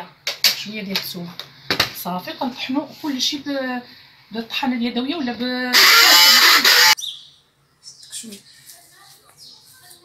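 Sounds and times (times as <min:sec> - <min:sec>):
hand blender motor whining: 0:05.8 - 0:07.0.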